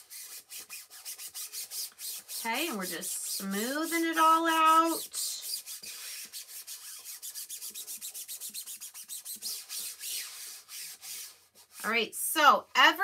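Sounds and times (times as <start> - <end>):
hand rubbing stencil on board: 0.0 - 12.0.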